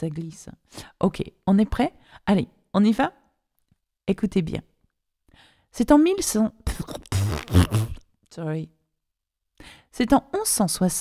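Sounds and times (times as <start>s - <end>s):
faint breath in: 5.3s - 5.7s, 9.6s - 9.9s.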